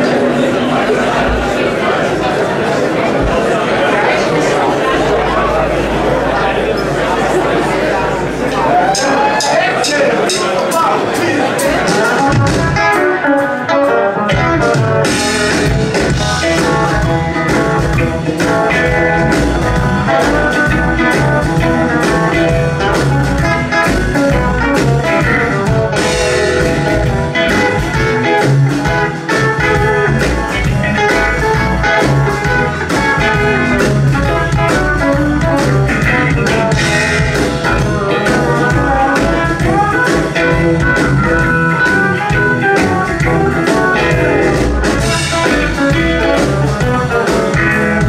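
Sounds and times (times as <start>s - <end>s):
bass guitar: 0.0s - 10.5s, 11.2s - 48.0s
drum kit: 8.3s - 48.0s
electric guitars: 11.4s - 48.0s.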